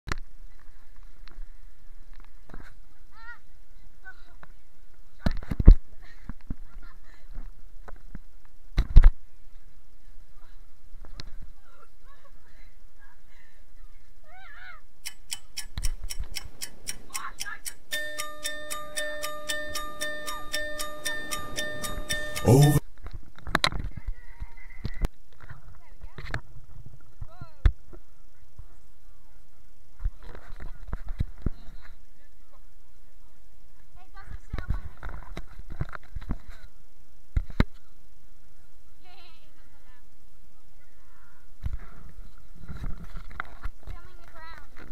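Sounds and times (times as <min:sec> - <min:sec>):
fast ticking clicks: 0:15.0 - 0:22.5.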